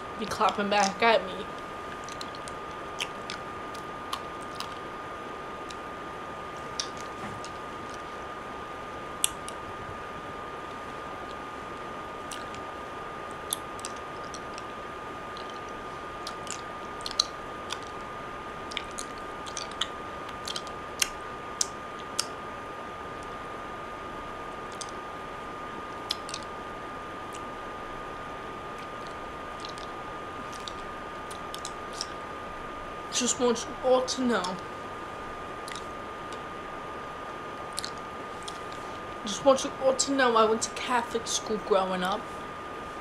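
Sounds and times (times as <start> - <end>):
wet mouth clicks and smacks: 1.9 - 4.8, 6.8 - 8.0, 9.2 - 9.6, 12.3 - 12.6, 13.5 - 14.6, 15.4 - 18.0, 18.7 - 22.3, 24.7 - 25.0, 26.1 - 26.5, 28.8 - 29.9, 30.5 - 32.2, 35.6 - 36.4, 37.7 - 38.8.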